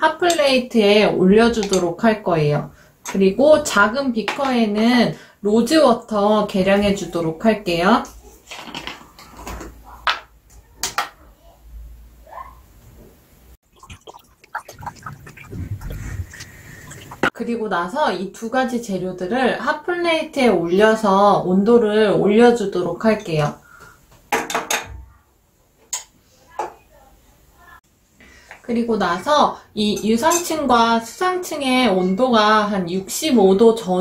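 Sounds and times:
glass beakers clinking: 13.8s - 17.3s.

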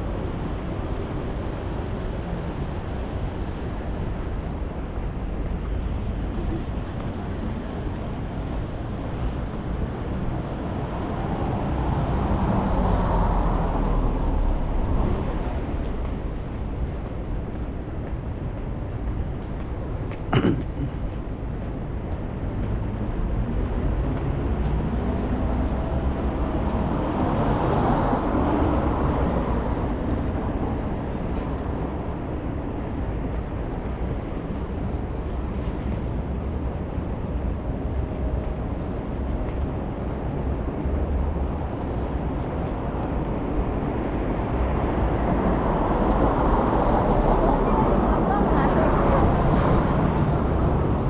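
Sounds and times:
hum of passing cars: 0.0s - 51.0s
vehicle passing by: 44.6s - 51.0s.

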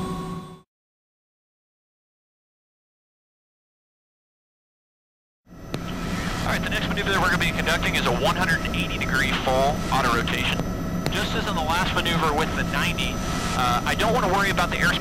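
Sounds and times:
helicopter turbine and rotor drone: 0.0s - 0.6s, 5.5s - 15.0s
voices: 5.9s - 15.0s.

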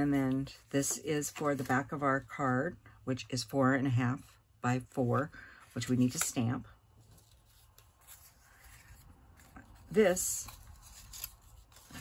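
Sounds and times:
faint paper rustling: 5.1s - 12.0s.

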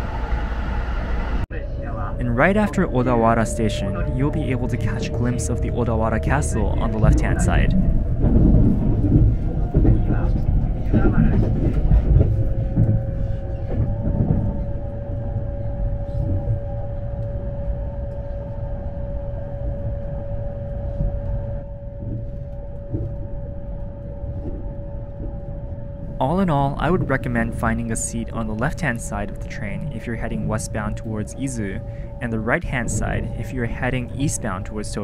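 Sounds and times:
electric train running rumble and whine: 0.0s - 35.0s.

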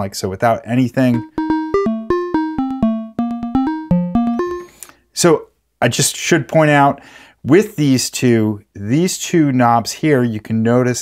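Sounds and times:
fast run of synth notes: 1.2s - 4.7s.

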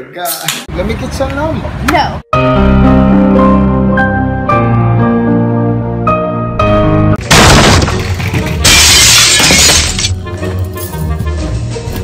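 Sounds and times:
crashing noise: 7.2s - 10.2s.

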